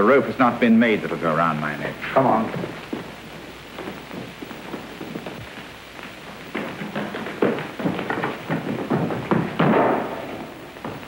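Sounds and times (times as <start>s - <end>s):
thumps and knocks: 2.5s - 11.0s.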